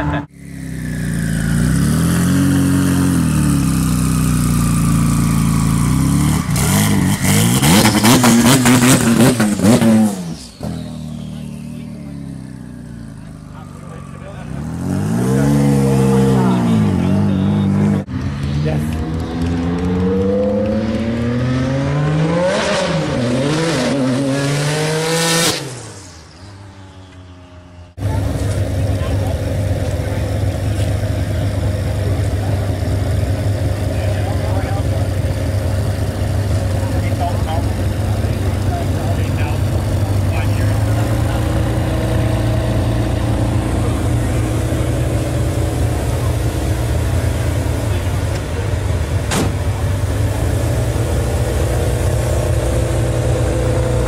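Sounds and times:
car engine idling: 0.0 - 20.9, 26.2 - 54.0
sports car engines revving: 0.0 - 54.0.

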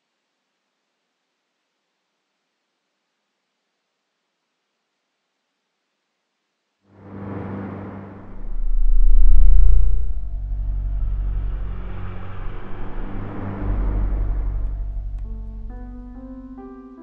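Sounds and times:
deep rumble with low drone: 7.0 - 16.6.

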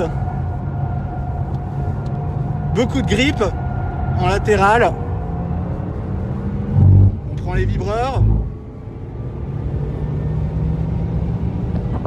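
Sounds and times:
tyre and road rumble: 1.2 - 12.0.

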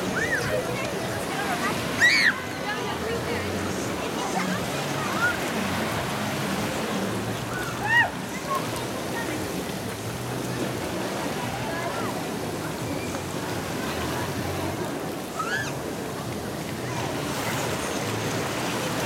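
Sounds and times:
children squealing: 0.0 - 0.5, 1.9 - 2.5, 7.5 - 8.2, 15.3 - 15.9
distant crowd voices: 0.0 - 19.0
water washing in a wave pool: 0.0 - 19.0.

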